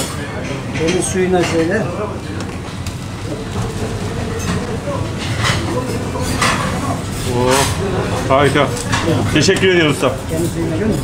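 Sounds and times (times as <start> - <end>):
murmur of voices: 0.0 - 11.0
plates and utensils clinking: 0.0 - 11.0.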